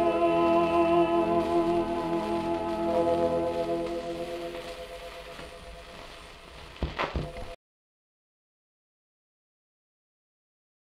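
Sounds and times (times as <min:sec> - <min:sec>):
record surface hiss and crackle: 0:00.0 - 0:07.6.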